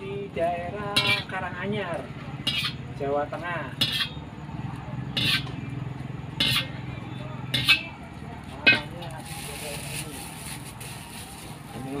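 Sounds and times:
metal ladle clanking on wok: 0.9 - 1.4, 2.4 - 2.8, 3.7 - 4.2, 5.2 - 5.5, 6.4 - 6.7, 7.5 - 7.9, 8.6 - 8.9
hiss from hot wok: 9.2 - 11.7.

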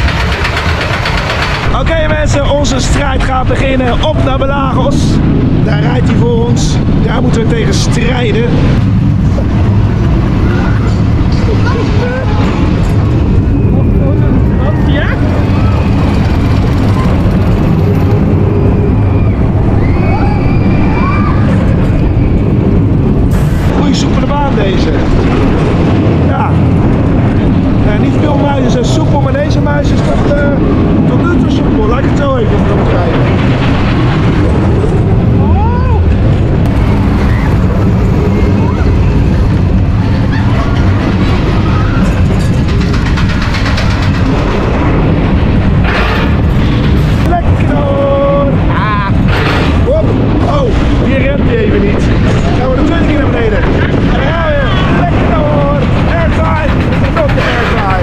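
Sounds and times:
coaster wheels squealing: 0.0 - 4.5, 9.3 - 26.2, 26.9 - 58.0
roller coaster rumbling on steel track: 0.0 - 58.0.

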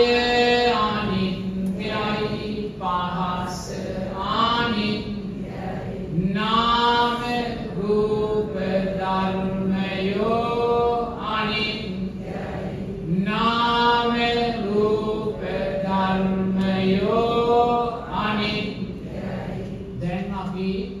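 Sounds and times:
person chanting: 0.0 - 21.0.

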